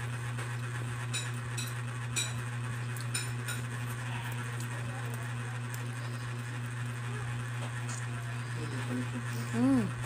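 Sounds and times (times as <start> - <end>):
steady low hum: 0.0 - 10.0
eating noodles: 2.9 - 10.0.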